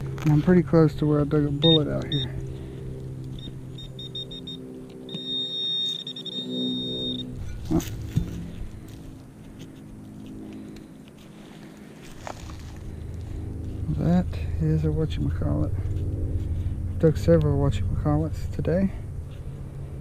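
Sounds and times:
low steady hum: 0:00.0 - 0:20.0
pinpointer high-pitched alert tone: 0:03.4 - 0:07.3.

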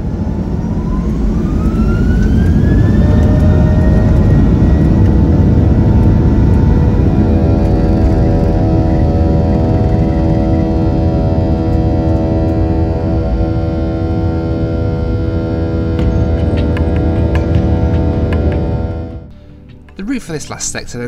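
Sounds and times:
loud steady engine rumble: 0:00.0 - 0:19.6
jet engines rising whine: 0:00.0 - 0:20.4
steady humming tones: 0:00.0 - 0:21.0.

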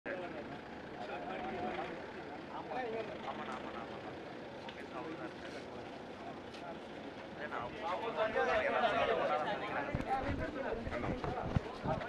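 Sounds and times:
men talking over one another: 0:00.1 - 0:12.0.

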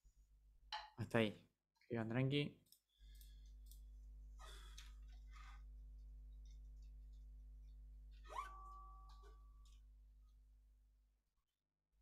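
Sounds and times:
faint electrical hum: 0:01.9 - 0:10.6.

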